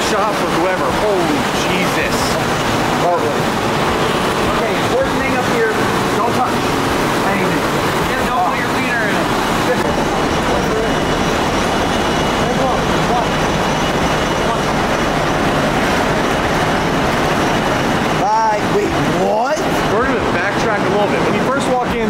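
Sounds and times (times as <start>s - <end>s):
conveyor machinery din: 0.0s - 22.0s.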